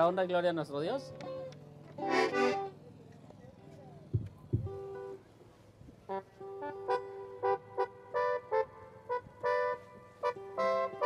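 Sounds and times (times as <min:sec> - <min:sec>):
accordion playing short chords: 0:01.0 - 0:03.0, 0:06.0 - 0:11.0.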